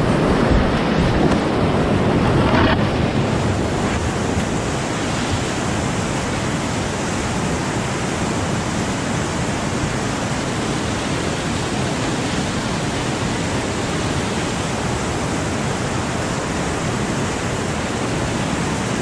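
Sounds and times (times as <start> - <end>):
whitewater rapids rushing: 0.0 - 19.0.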